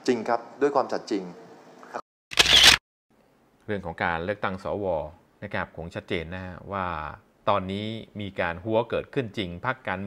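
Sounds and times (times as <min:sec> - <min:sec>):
camera shutter sound effect: 0:02.3 - 0:02.8
man speaking: 0:03.7 - 0:10.0.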